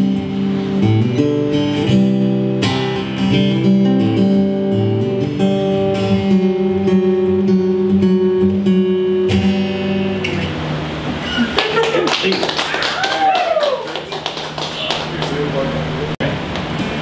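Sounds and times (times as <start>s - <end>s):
acoustic guitar strumming: 0.0s - 11.8s.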